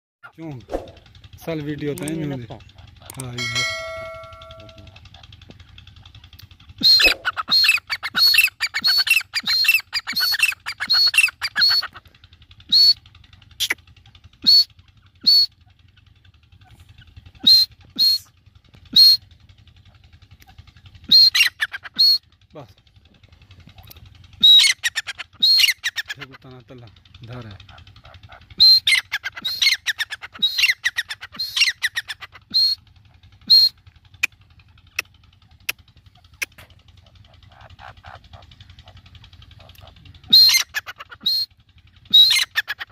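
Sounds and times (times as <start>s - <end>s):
electronic chime: 3.4s - 4.9s
francolin calling: 6.8s - 12.0s, 12.6s - 13.0s, 14.4s - 15.7s, 16.6s - 18.3s, 21.0s - 22.2s, 24.4s - 26.3s, 27.7s - 32.8s, 33.5s - 34.3s, 35.6s - 42.9s.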